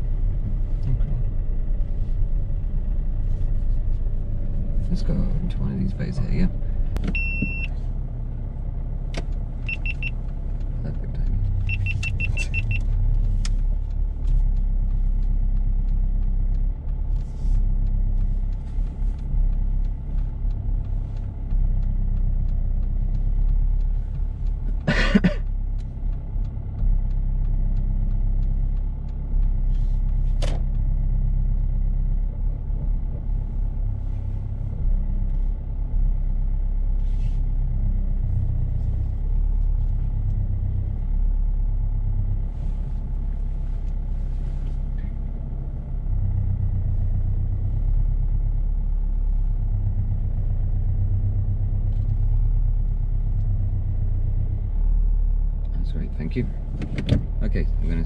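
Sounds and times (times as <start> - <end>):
car engine running low: 0.0 - 58.0
parking sensor beeps: 7.0 - 7.8, 9.6 - 10.2, 11.6 - 13.0.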